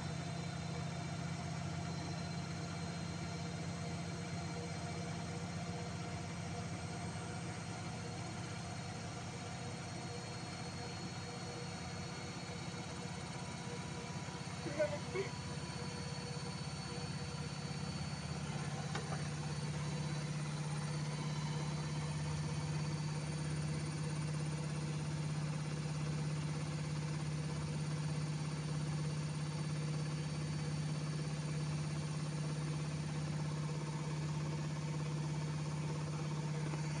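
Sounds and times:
washing machine humming: 0.0s - 37.0s.

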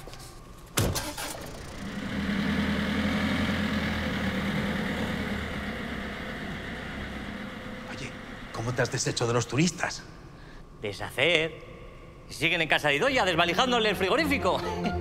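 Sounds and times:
van engine humming: 1.0s - 9.9s.

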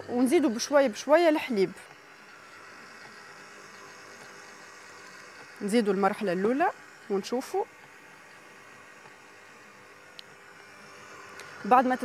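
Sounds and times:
stand mixer whirring: 0.0s - 12.0s.

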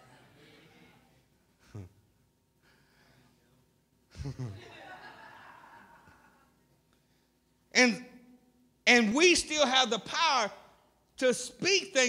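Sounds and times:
man chuckling: 1.6s - 2.0s, 4.1s - 5.0s.

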